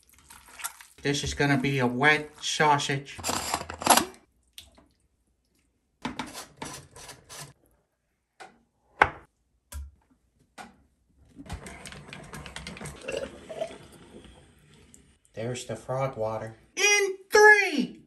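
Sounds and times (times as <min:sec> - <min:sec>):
liquid sloshing and dripping: 0:00.0 - 0:01.2, 0:04.3 - 0:05.9.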